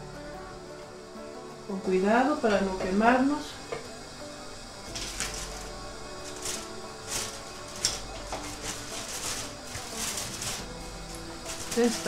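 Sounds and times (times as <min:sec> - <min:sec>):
soft background music: 0:00.0 - 0:12.0
aluminium foil crinkling: 0:04.9 - 0:12.0.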